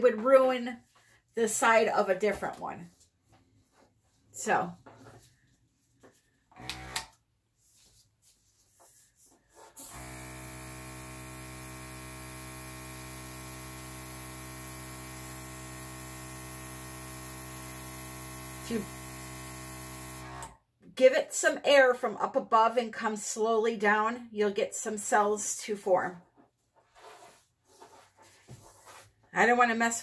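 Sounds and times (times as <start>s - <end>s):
airbrush compressor buzzing hum: 9.8s - 20.5s.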